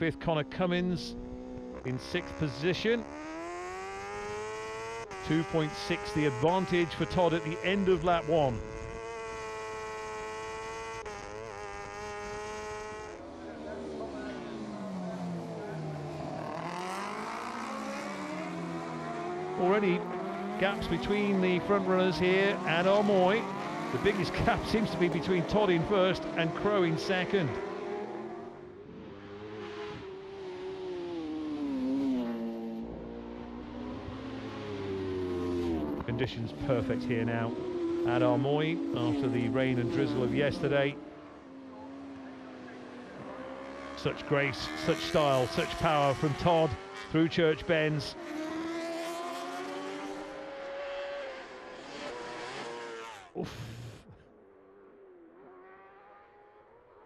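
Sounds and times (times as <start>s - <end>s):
motorcycle engines at high revs: 0.0s - 57.0s.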